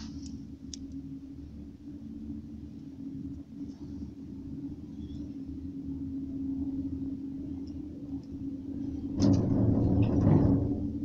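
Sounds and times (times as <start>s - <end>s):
gondola cabin hum: 0.0s - 11.0s
rumbling clatter over sheave wheels: 9.0s - 11.0s.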